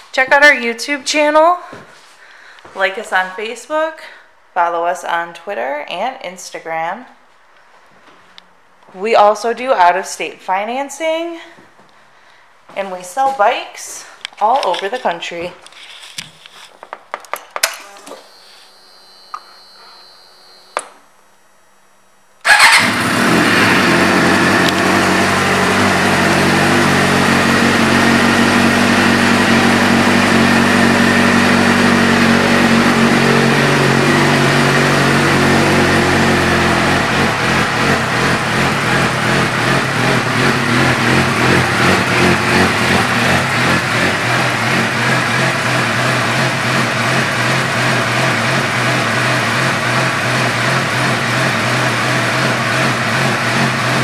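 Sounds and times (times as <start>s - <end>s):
motorcycle engine idling: 22.4s - 47.8s.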